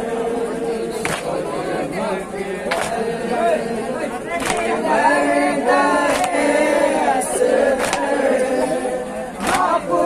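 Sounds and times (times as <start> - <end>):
men reciting a lament: 0.0 - 10.0.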